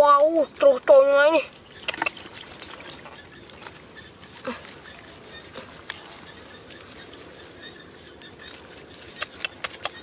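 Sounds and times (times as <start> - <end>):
wet squelches: 0.1 - 10.0.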